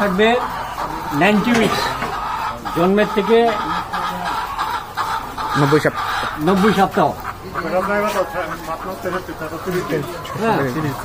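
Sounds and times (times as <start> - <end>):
man talking: 0.0 - 3.9, 5.5 - 11.0
hens clucking: 0.0 - 11.0.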